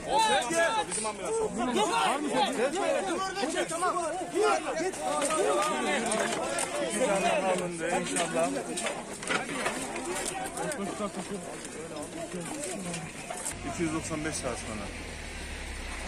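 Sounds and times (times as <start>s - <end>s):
voices talking over one another: 0.0s - 15.0s.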